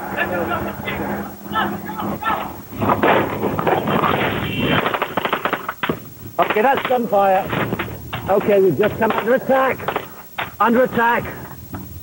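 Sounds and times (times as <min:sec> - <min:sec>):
voices inside vehicle: 0:00.0 - 0:02.7
machine-gun shots: 0:02.9 - 0:10.2.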